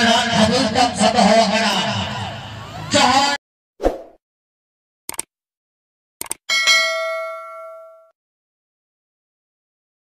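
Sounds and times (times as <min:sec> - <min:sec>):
double mouse click: 0:05.1 - 0:05.3, 0:06.2 - 0:06.4
bright bell ding: 0:06.5 - 0:08.2.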